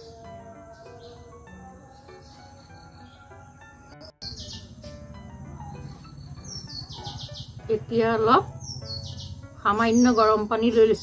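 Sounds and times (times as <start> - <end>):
birds chirping: 0.0 - 11.0
soft background music: 0.0 - 11.0.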